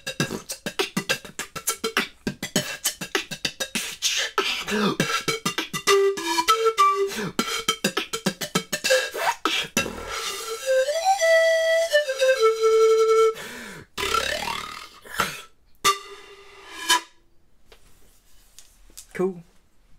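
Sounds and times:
pan flute with beatboxing: 0:00.0 - 0:16.2.

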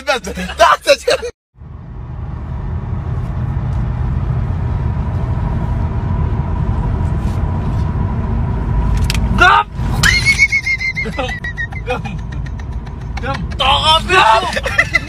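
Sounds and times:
car engine rumble: 0:00.0 - 0:15.0
person's voice: 0:13.2 - 0:15.0.

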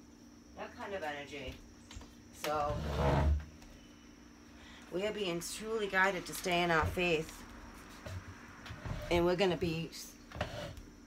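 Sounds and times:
woman speaking: 0:04.9 - 0:07.5, 0:09.1 - 0:10.2.

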